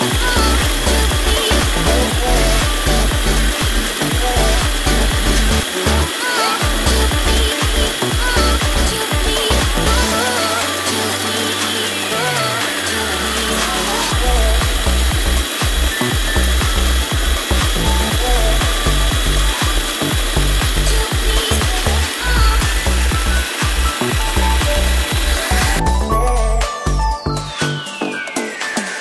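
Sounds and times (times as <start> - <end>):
background music: 0.0 - 29.0.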